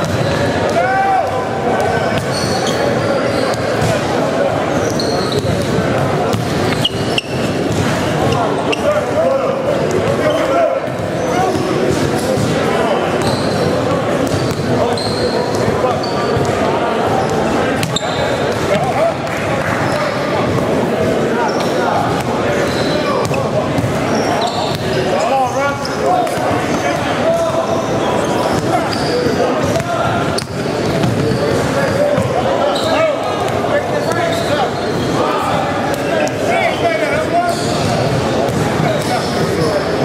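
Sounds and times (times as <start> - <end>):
basketballs bouncing on wooden floor: 0.0 - 2.6, 5.3 - 8.0, 14.2 - 14.8, 23.2 - 24.0, 29.6 - 32.4, 37.5 - 39.2
chatter of many voices: 0.0 - 40.0.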